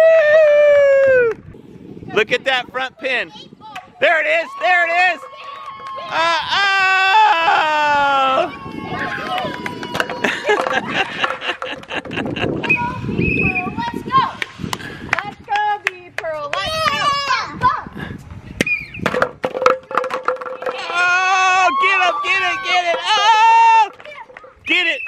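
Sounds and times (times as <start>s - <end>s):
children shouting and squealing: 4.4s - 11.0s, 12.6s - 14.4s, 16.6s - 18.0s, 20.6s - 24.7s
plastic pins knocking on concrete: 9.9s - 12.3s, 19.0s - 21.1s.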